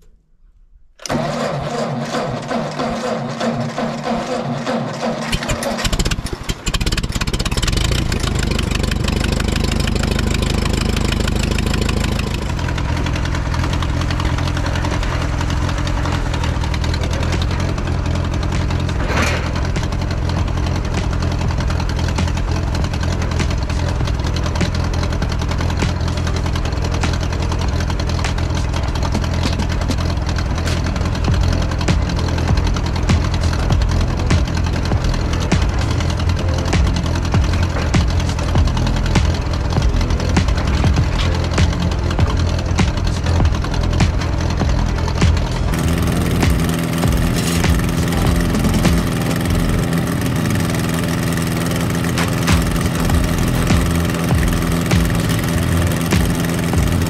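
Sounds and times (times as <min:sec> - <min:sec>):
tractor engine running: 0:01.0 - 0:57.0
tractor engine starter cranking: 0:01.0 - 0:57.0.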